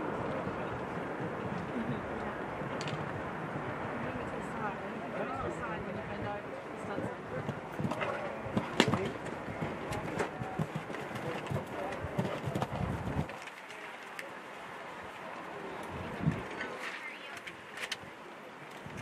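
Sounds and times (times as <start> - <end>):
horse hoofbeats on grass: 7.4 - 13.3.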